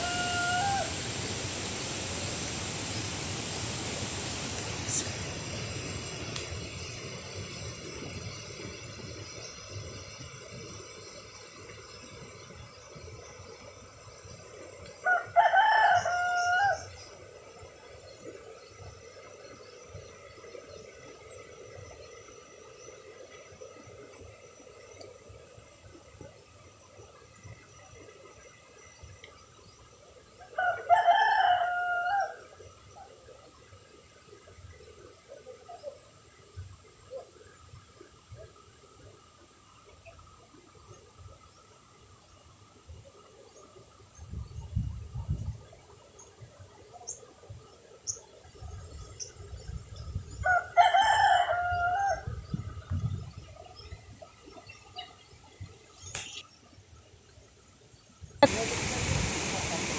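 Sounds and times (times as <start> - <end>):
rooster crowing: 0.0 - 1.0, 15.0 - 17.0, 30.6 - 32.4, 50.4 - 52.3
faint steady hiss: 0.0 - 59.9.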